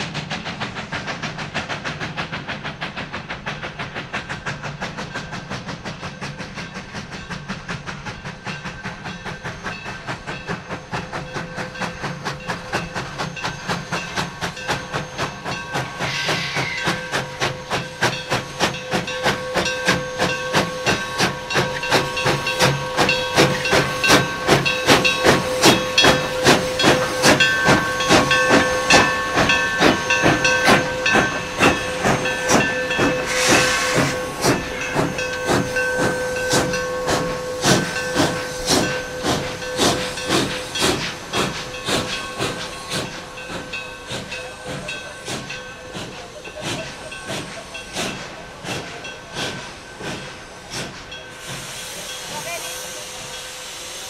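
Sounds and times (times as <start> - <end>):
loud burst of steam: 0.0 - 54.0
steam hissing: 0.0 - 54.0
steam locomotive chuffing: 0.0 - 54.0.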